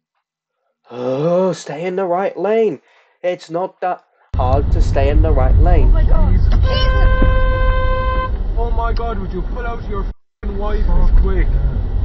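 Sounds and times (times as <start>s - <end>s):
low road rumble: 4.4s - 12.0s
car horn long blast: 6.5s - 8.5s.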